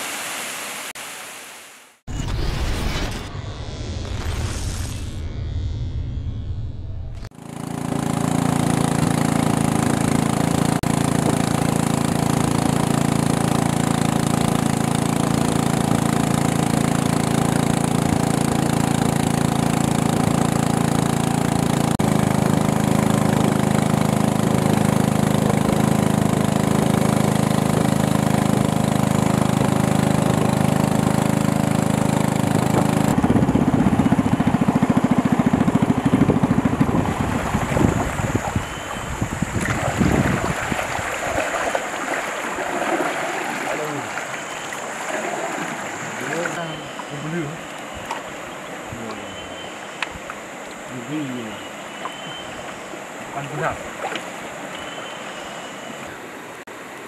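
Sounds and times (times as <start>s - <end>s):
small boat engine droning: 5.2s - 57.0s.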